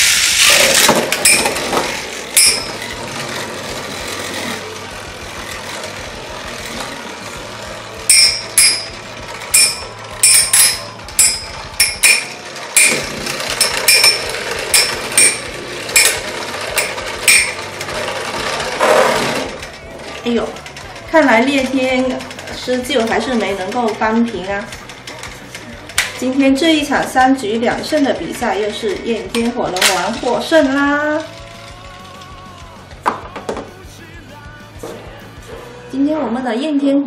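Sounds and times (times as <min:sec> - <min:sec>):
metal tops clacking: 0:00.0 - 0:33.8
spinning tops whirring: 0:00.0 - 0:35.5.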